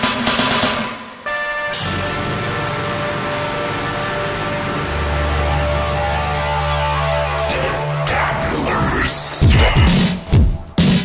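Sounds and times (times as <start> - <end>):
heavy bass: 0.0 - 11.0.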